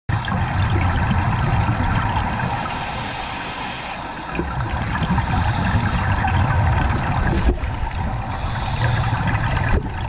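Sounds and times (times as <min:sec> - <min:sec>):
underwater rush of water: 0:00.1 - 0:10.0.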